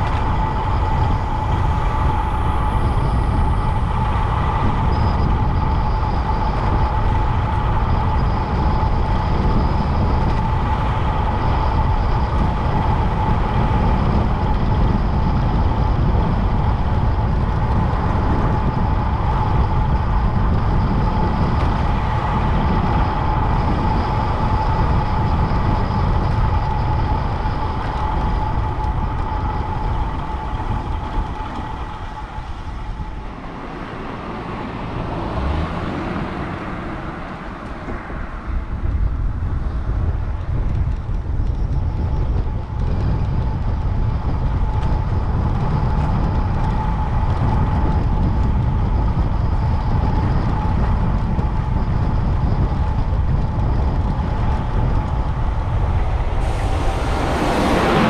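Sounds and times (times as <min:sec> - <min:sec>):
steady high hum: 0:00.0 - 0:40.7, 0:41.3 - 0:58.0
tyre noise on concrete road: 0:00.0 - 0:58.0
wind rushing over microphone: 0:00.0 - 0:58.0.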